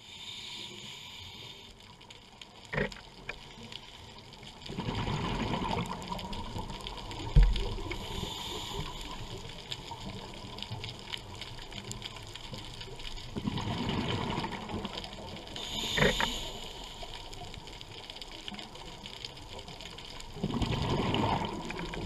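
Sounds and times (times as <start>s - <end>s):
underwater bubbles rumbling: 2.6s - 3.5s, 4.3s - 22.0s.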